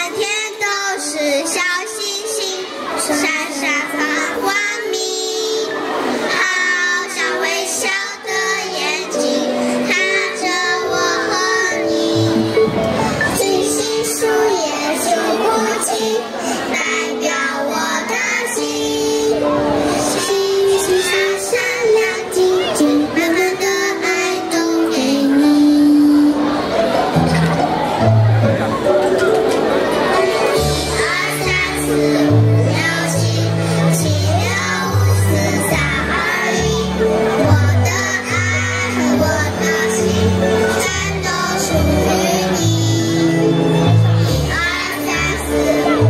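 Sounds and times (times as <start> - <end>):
children singing through microphones: 0.0 - 46.0.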